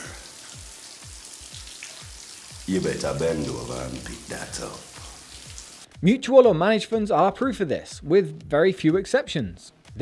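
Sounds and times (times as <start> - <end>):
shower water spraying on tiles: 0.0 - 5.9.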